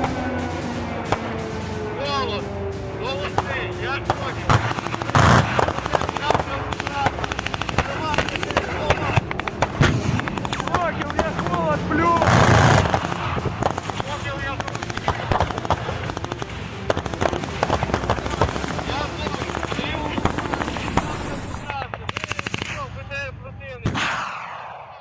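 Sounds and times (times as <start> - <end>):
loud rushing blast: 0.0 - 21.7
rapid gunfire: 0.0 - 23.0, 23.8 - 25.0.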